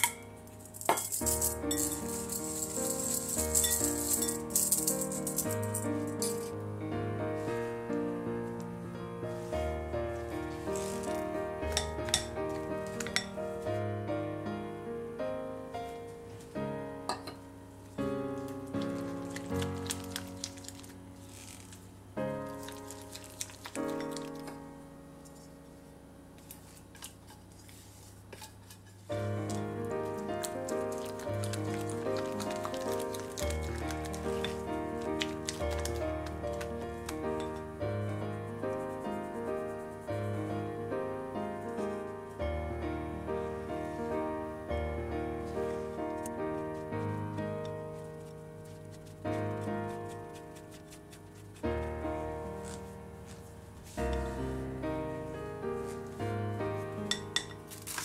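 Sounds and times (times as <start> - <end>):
sieve rattling: 0.6 - 6.5.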